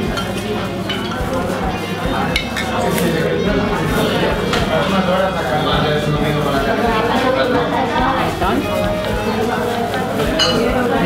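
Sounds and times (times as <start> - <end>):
diners chattering: 0.0 - 11.0
tableware clinking: 0.1 - 1.6, 2.2 - 3.3, 9.6 - 11.0.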